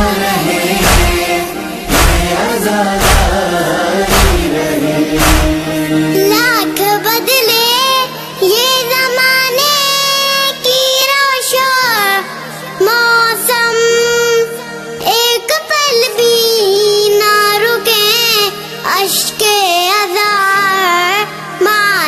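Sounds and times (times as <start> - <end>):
steady low drone: 0.0 - 6.3
high voice singing lament: 0.0 - 22.0.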